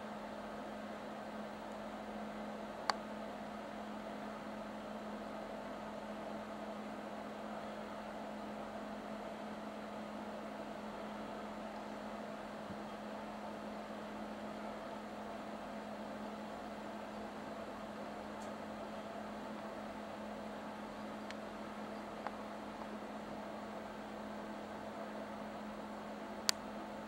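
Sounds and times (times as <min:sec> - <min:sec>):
constant hiss: 0:00.0 - 0:27.0
steady low hum: 0:00.0 - 0:27.0.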